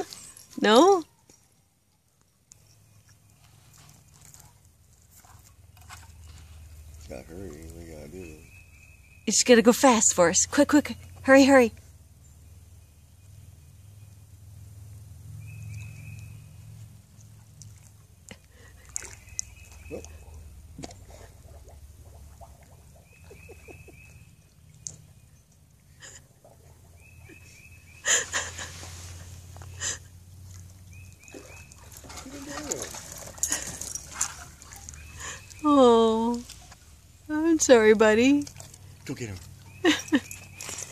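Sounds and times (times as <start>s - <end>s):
dog paws splashing in water: 0.0s - 8.6s, 15.6s - 25.8s, 26.4s - 40.9s.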